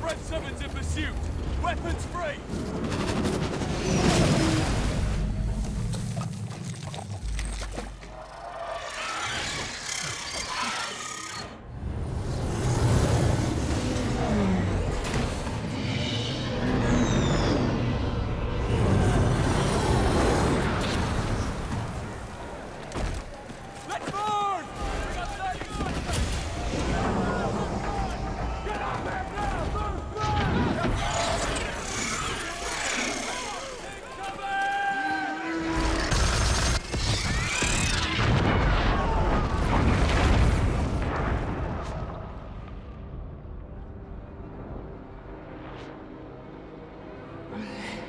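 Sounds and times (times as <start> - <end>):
people shouting: 23.4 - 36.1
explosions: 36.1 - 43.4
film score music: 40.3 - 48.0.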